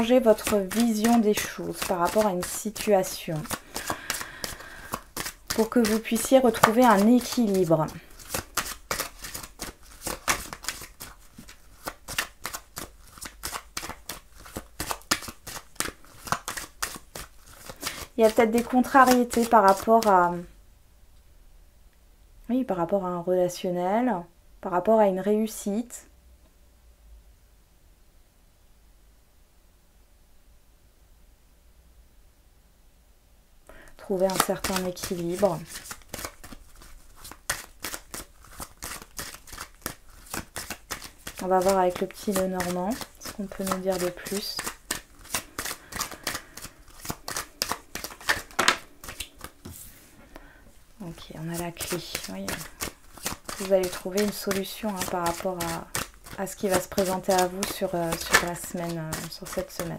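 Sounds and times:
cards being shuffled: 0.0s - 20.3s, 34.1s - 50.4s, 51.0s - 59.9s.

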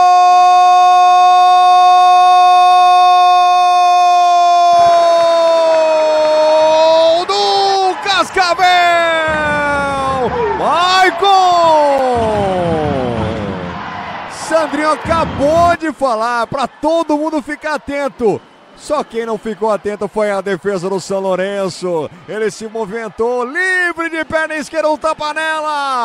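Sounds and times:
crowd noise: 0.0s - 26.0s
commentator shouting goal: 3.4s - 13.2s, 14.3s - 26.0s.

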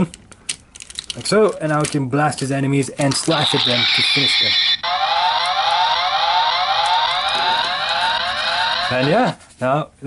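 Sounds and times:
electronic police siren yelp: 3.3s - 9.3s.

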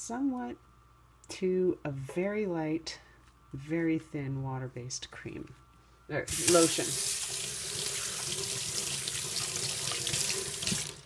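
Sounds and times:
tap water splashing into sink: 6.3s - 11.0s.

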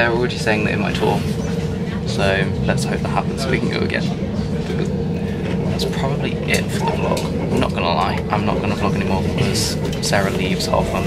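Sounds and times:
steady drone: 0.0s - 11.0s
train carriage rumbling: 0.0s - 11.0s.

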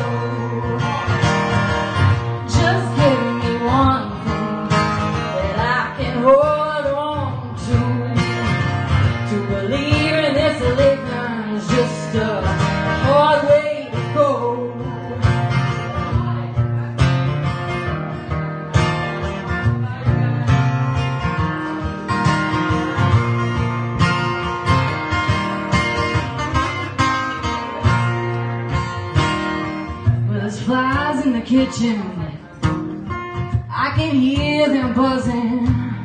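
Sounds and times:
acoustic guitar strumming: 0.0s - 36.0s.

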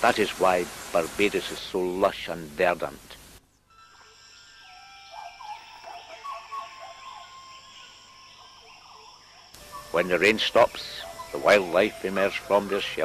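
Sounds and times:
chirping and whistled calls: 3.7s - 13.0s
high-pitched insect trill: 3.7s - 13.0s.

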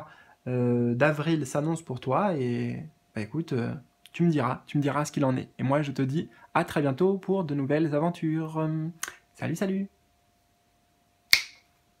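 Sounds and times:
finger snap: 9.0s - 9.2s, 11.3s - 11.7s.

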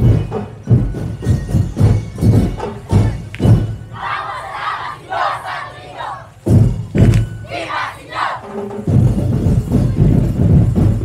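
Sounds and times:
heavy drum beats: 0.0s - 5.4s, 6.3s - 11.0s
group shouting battle cry: 4.0s - 6.3s, 7.4s - 8.4s.

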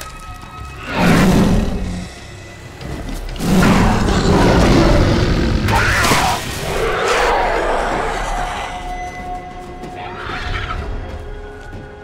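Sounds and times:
big cat snarling roar: 3.4s - 8.4s.

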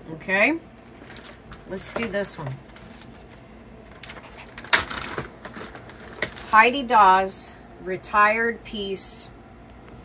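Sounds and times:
plastic bag crackling: 0.8s - 6.9s
small clicks and rustles: 1.0s - 6.6s.

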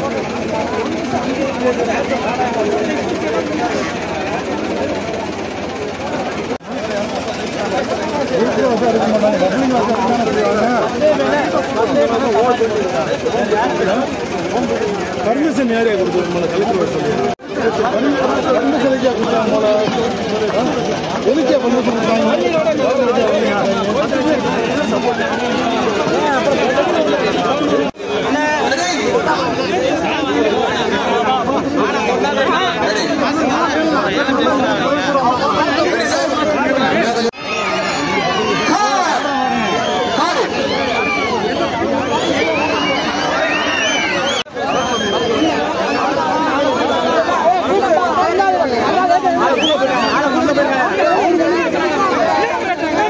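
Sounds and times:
crowd chatter: 0.0s - 53.0s
men arguing loudly: 6.5s - 53.0s.

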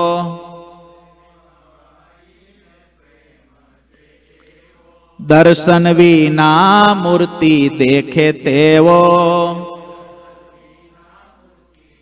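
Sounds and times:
man chanting a held note: 0.0s - 1.2s.

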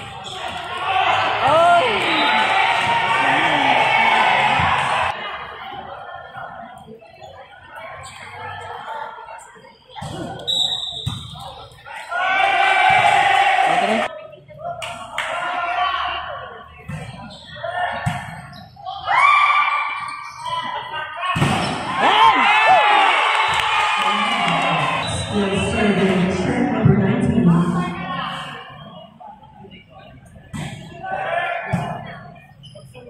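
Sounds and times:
people shouting: 0.3s - 5.2s, 21.3s - 25.0s.

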